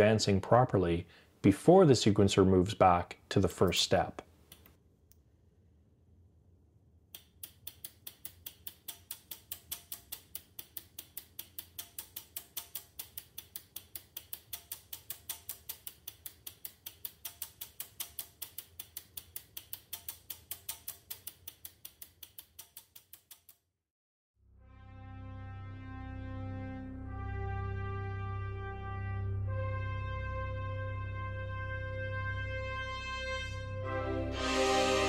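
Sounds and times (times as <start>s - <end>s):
relays clicking rhythmically: 7.2s - 23.6s.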